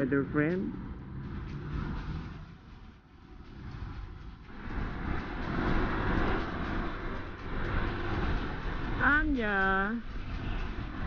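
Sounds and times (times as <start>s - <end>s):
road noise: 0.0s - 11.0s
wind: 0.0s - 11.0s.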